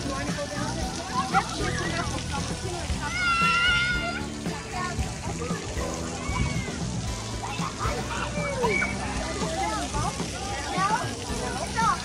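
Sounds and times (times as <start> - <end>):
background music: 0.0 - 12.0
voices: 0.0 - 12.0
child squealing: 3.0 - 4.2, 8.2 - 9.0.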